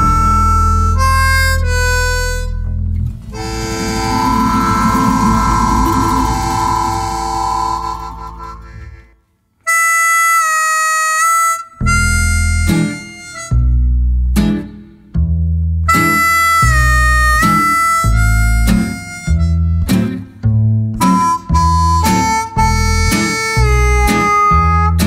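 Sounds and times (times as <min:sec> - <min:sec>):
harmonica playing: 0:00.0 - 0:14.2, 0:15.9 - 0:20.4, 0:21.0 - 0:25.0
bass: 0:00.0 - 0:25.0.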